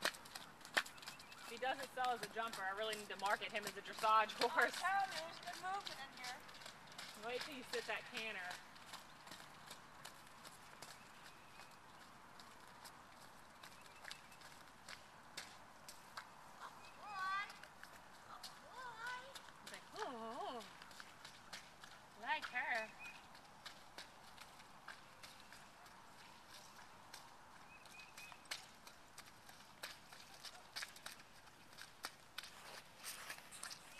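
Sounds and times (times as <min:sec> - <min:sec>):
hoofbeats on dirt: 0:00.0 - 0:33.9.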